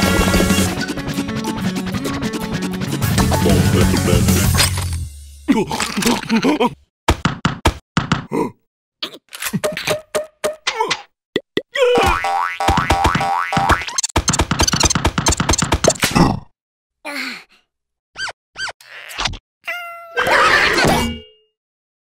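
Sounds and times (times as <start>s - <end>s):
cartoon punches and thuds: 7.1s - 8.4s, 12.0s - 16.4s.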